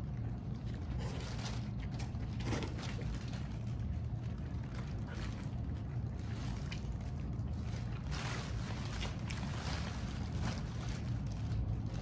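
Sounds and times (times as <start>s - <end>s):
steady low hum: 0.0s - 12.0s
plastic bag crinkling: 0.9s - 12.0s.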